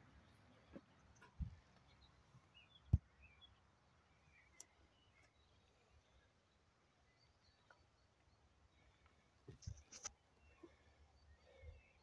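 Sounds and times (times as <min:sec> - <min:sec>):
faint bird chirps: 0:00.2 - 0:12.0.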